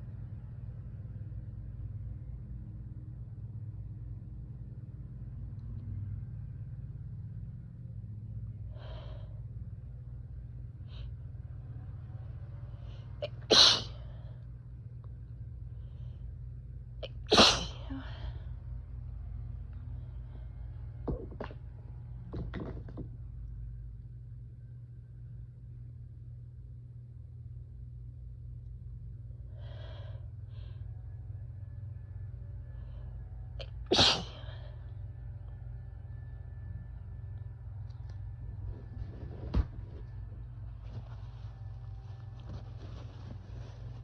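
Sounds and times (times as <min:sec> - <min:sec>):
person sneezing: 0:13.2 - 0:14.0, 0:17.1 - 0:18.0, 0:33.9 - 0:34.5.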